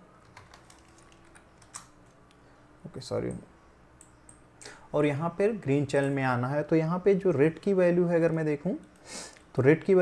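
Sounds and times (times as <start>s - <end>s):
faint keyboard typing: 0.1s - 2.4s, 3.2s - 4.5s, 5.8s - 6.3s, 8.1s - 9.6s.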